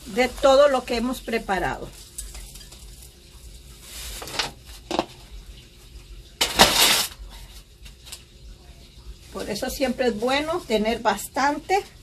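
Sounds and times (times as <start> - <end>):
soil and glass scraped in foil tray: 0.1 - 3.2, 3.8 - 4.9, 6.4 - 7.7.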